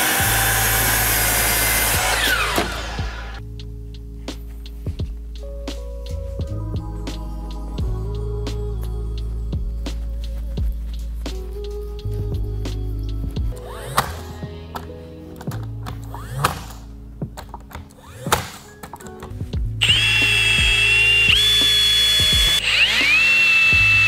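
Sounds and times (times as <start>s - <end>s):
brad nailer firing: 0.0s - 3.4s, 16.4s - 16.8s, 18.1s - 18.7s, 19.8s - 24.0s
cordless drill whining: 0.0s - 3.4s, 19.8s - 24.0s.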